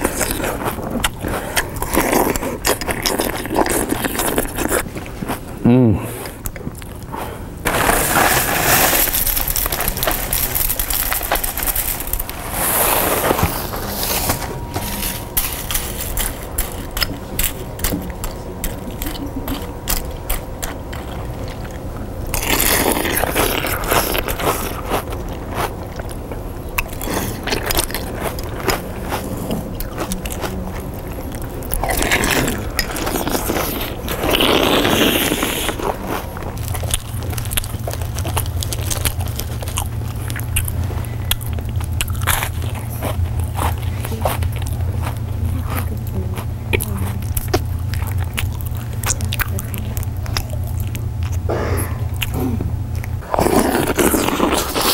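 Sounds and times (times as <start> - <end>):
chewing crunchy food: 0.0 - 54.9
steady low hum: 0.0 - 54.9.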